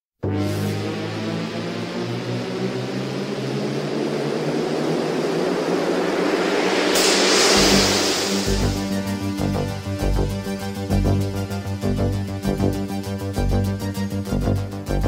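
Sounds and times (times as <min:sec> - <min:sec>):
held synthesizer chords: 0:00.2 - 0:15.0
rising noise swell: 0:00.3 - 0:13.8
cymbal crash: 0:02.3 - 0:12.4.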